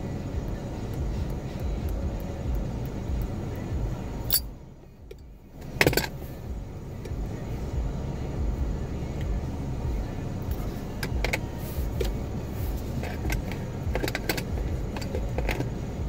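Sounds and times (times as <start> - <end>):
car engine idling: 0.0 - 16.0.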